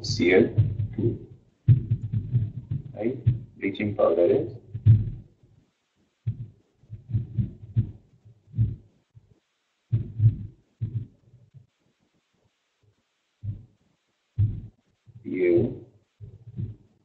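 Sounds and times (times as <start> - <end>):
stylus knocking on drawing tablet: 0.4 - 1.1, 1.7 - 3.6, 4.6 - 5.2, 6.3 - 8.0, 9.9 - 11.1.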